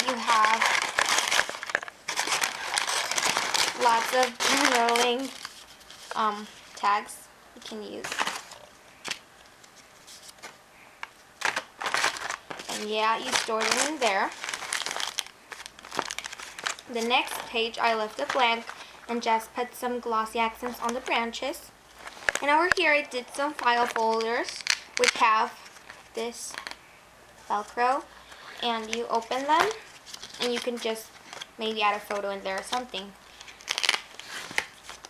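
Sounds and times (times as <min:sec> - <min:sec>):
paper bag crinkling: 0:00.0 - 0:06.9, 0:07.7 - 0:10.6, 0:11.4 - 0:19.0, 0:21.9 - 0:26.8, 0:27.5 - 0:35.0.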